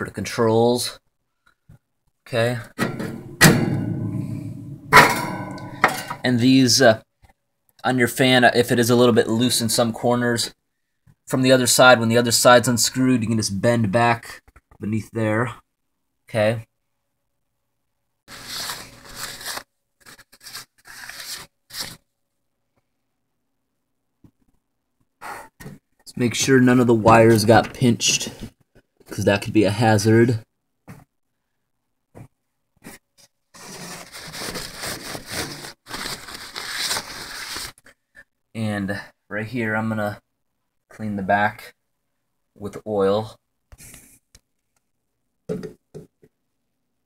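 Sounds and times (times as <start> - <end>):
metal fan grate clanging: 2.8 - 6.2.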